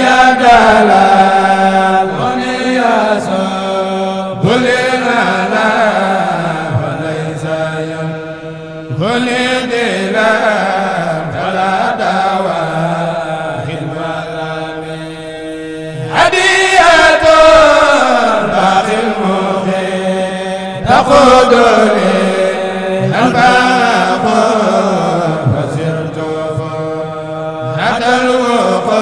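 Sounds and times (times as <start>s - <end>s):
men chanting unaccompanied: 0.0s - 29.0s.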